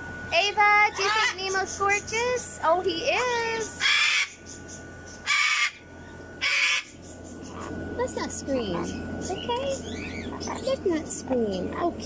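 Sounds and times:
cockatoo screaming: 0.9s - 1.6s, 3.8s - 4.4s, 5.2s - 5.8s, 6.4s - 7.7s.

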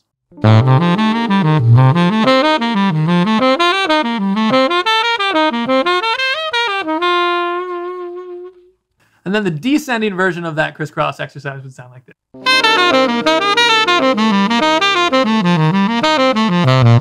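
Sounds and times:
jazz saxophone arpeggios: 0.4s - 8.7s, 12.4s - 17.0s.

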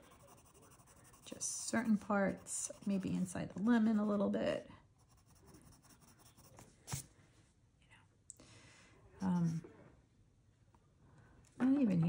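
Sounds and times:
colored pencil scratching paper: 0.0s - 4.3s, 5.0s - 7.1s.

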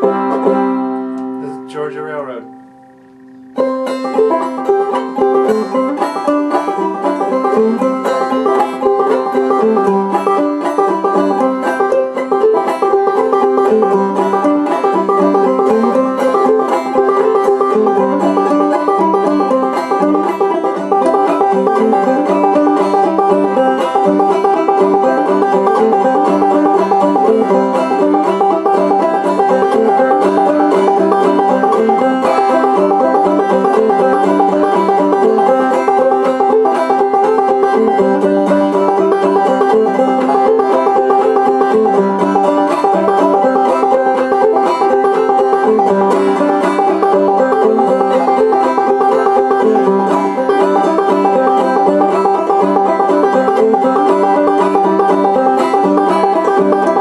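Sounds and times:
banjo plucked notes: 0.0s - 57.0s.

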